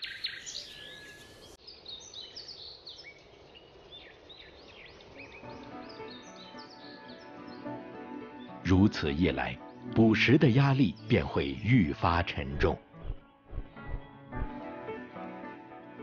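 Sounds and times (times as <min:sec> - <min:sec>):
small birds chirping and whistling: 0:00.0 - 0:07.7
soft sustained music: 0:04.6 - 0:16.0.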